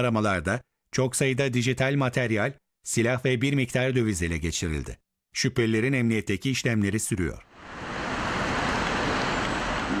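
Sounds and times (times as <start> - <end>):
street traffic noise: 7.5 - 10.0.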